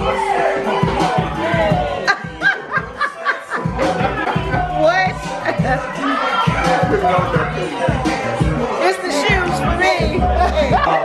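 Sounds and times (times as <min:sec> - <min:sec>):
dance music: 0:00.0 - 0:11.0
person laughing: 0:02.1 - 0:05.9.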